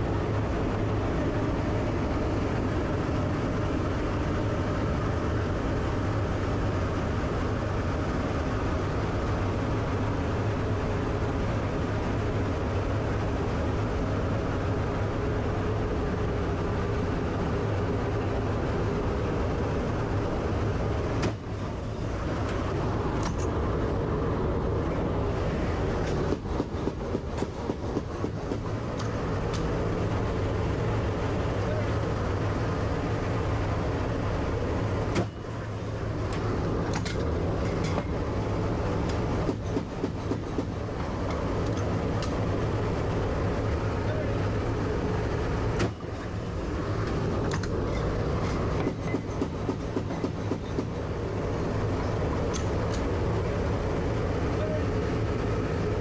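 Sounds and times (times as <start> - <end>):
turboprop engines droning: 0.0 - 56.0.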